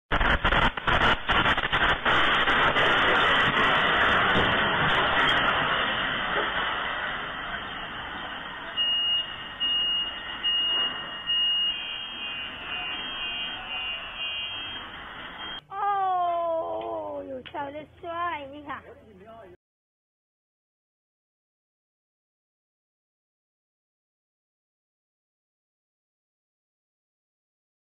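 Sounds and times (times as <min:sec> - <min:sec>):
earthquake rumble and rattling: 0:00.1 - 0:11.2
car alarm beeping: 0:07.7 - 0:15.6.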